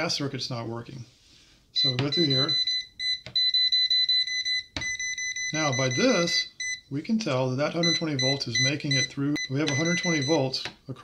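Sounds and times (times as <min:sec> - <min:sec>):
rapid high-pitched beeping: 0:01.8 - 0:06.8, 0:07.8 - 0:10.4.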